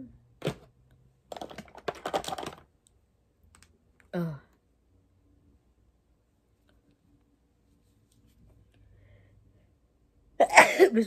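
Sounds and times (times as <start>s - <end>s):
small hard clicks and clattering: 1.3s - 2.7s.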